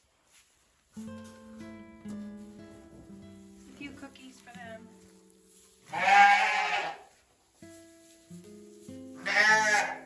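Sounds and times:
background music: 0:01.0 - 0:06.8
sheep bleating: 0:05.9 - 0:07.1, 0:09.2 - 0:10.0.

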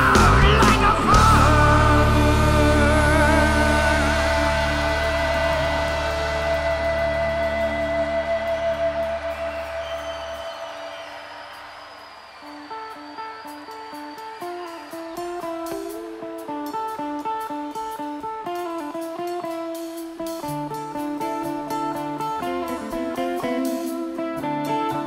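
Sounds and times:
rock band chord: 0:00.0 - 0:10.2
electric guitar picking notes: 0:00.0 - 0:10.5, 0:12.4 - 0:25.0
bass guitar: 0:00.0 - 0:10.7.

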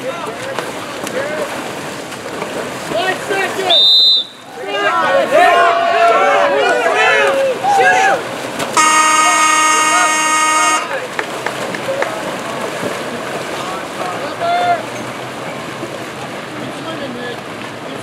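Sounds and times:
water splashing: 0:00.0 - 0:18.0
voices shouting: 0:02.9 - 0:11.2, 0:13.5 - 0:15.1
electric horn blast: 0:08.8 - 0:10.9.

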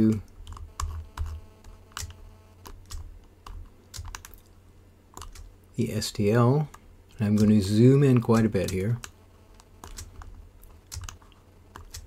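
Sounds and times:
computer mouse and keyboard clicking: 0:00.0 - 0:04.5, 0:05.1 - 0:05.5, 0:06.6 - 0:12.0.

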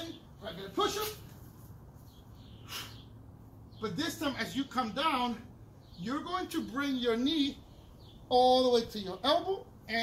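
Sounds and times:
man breathing out hissing: 0:02.6 - 0:03.1.

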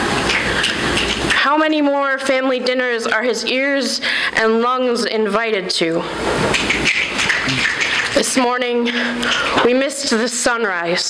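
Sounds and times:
poet speaking: 0:06.6 - 0:10.3.

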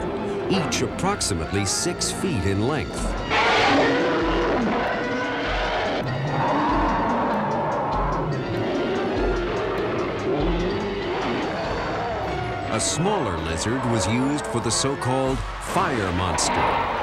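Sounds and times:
dramatic film music: 0:00.0 - 0:17.0
creature screeching and roaring: 0:03.3 - 0:14.3.

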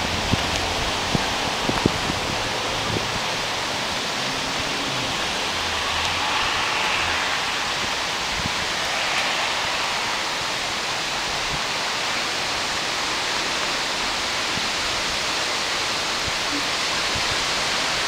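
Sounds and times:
rushing water: 0:00.0 - 0:18.0.

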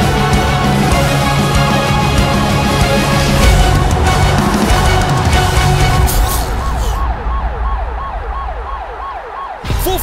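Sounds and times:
ambulance siren wailing: 0:00.0 - 0:10.0
low rumble: 0:02.4 - 0:09.5.

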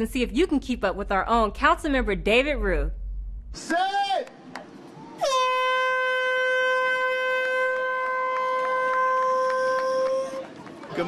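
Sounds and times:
air horn blast: 0:05.2 - 0:10.5.

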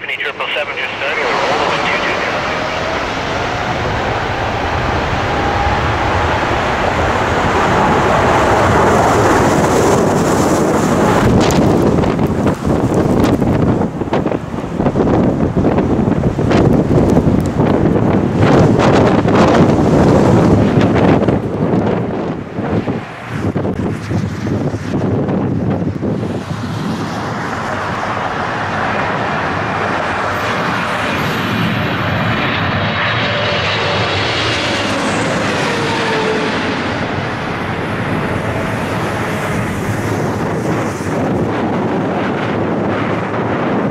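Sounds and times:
jet blast buffeting microphone: 0:00.0 - 0:43.9
jet engine whine: 0:00.0 - 0:43.9
jet engines at takeoff: 0:00.0 - 0:43.9.

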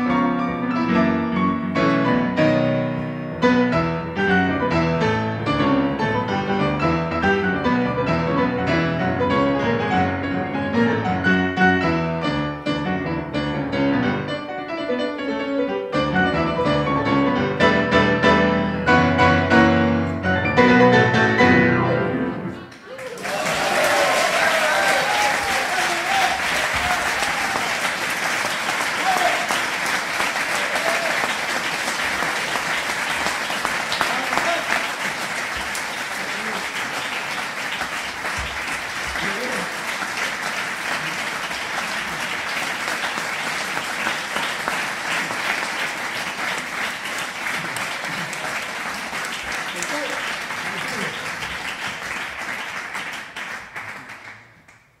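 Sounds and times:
audience applauding: 0:22.7 - 0:55.0.

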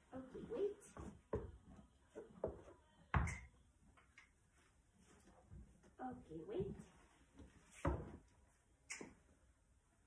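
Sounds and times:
horse hooves on barn floor: 0:00.8 - 0:03.4.

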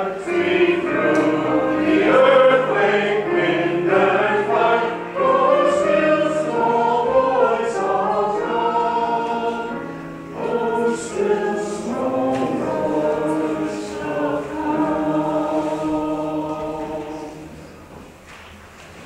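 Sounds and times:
choir singing: 0:00.0 - 0:18.0.

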